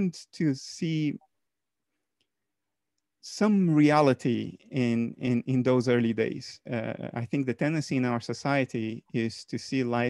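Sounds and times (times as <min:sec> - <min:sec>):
man speaking: 0:00.0 - 0:01.3, 0:03.2 - 0:10.0.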